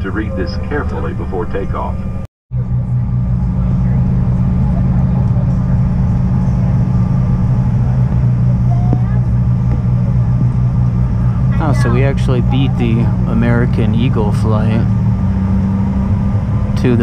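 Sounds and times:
jet engines droning in cabin: 0.0 - 17.0.

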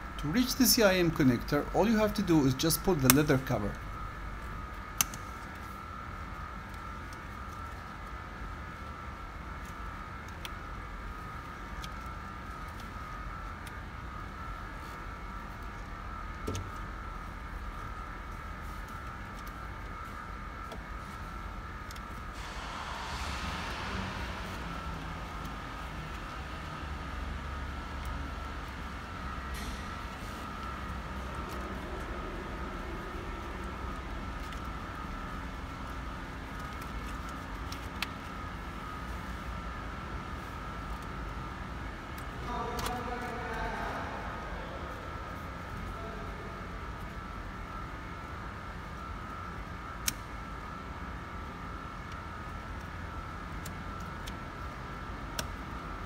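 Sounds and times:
high-pitched whine: 0.0 - 53.4.

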